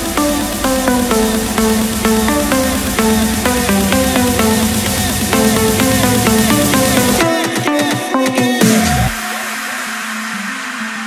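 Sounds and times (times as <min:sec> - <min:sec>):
sustained synth note: 0:00.0 - 0:07.3
white-noise wash: 0:00.0 - 0:07.3.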